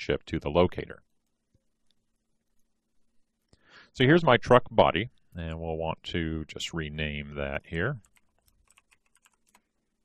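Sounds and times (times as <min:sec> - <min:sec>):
computer keyboard typing: 0:08.0 - 0:09.7.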